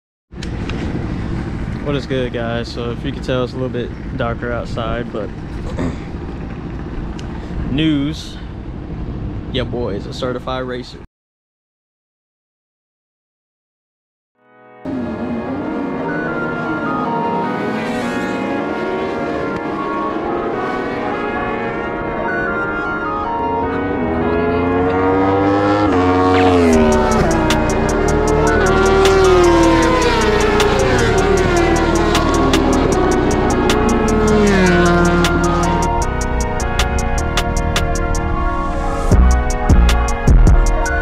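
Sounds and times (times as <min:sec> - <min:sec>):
low outdoor rumble: 0:00.4 - 0:11.0
man talking: 0:01.8 - 0:06.0, 0:07.7 - 0:08.5, 0:09.5 - 0:11.1
motorcycles revving and accelerating: 0:14.9 - 0:41.0
music: 0:26.4 - 0:41.0.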